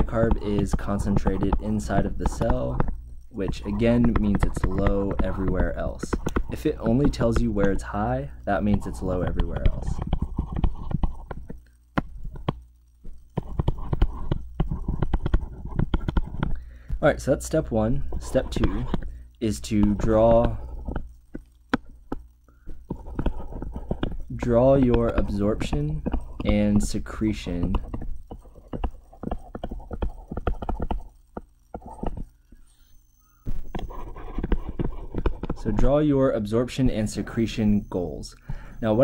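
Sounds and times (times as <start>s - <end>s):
stylus tapping on tablet screen: 0.0s - 7.9s, 8.5s - 17.0s, 17.9s - 19.1s, 19.7s - 32.7s, 33.4s - 35.9s.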